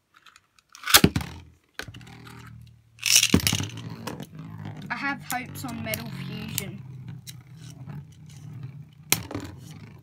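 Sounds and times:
spinning tops whirring: 2.0s - 10.0s
spinning tops clacking together: 3.0s - 3.8s.

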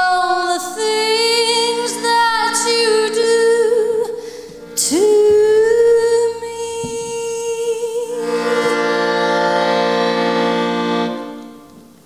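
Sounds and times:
accordion chord: 1.0s - 6.7s, 8.1s - 12.0s.

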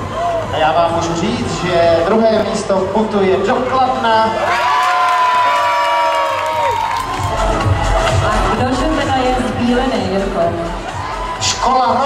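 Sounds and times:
children screaming and cheering: 4.4s - 8.6s, 10.8s - 12.0s
music with thumping beat: 7.0s - 12.0s.

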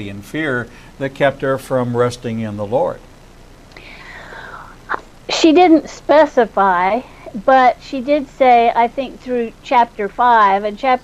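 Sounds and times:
person speaking: 0.0s - 3.0s
soft airy breath: 0.7s - 1.0s, 3.8s - 4.8s.

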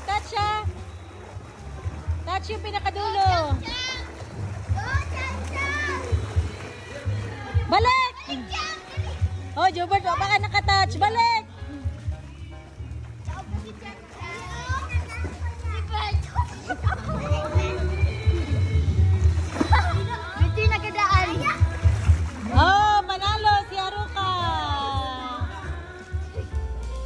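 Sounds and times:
children calling and shouting: 0.0s - 12.0s, 13.2s - 22.6s, 23.6s - 27.0s
music playing: 0.0s - 27.0s
children shouting and squealing: 3.6s - 6.2s, 8.1s - 9.3s.

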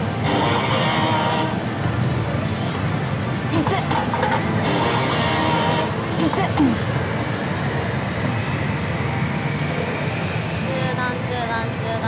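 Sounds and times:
gaming parlour din: 1.9s - 8.4s
slot machine sound effects: 3.6s - 5.4s.

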